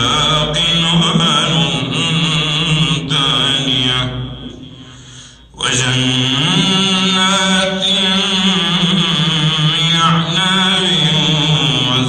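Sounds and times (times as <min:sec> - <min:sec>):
man chanting into a microphone: 0:00.0 - 0:12.0
breath intake: 0:04.8 - 0:05.6.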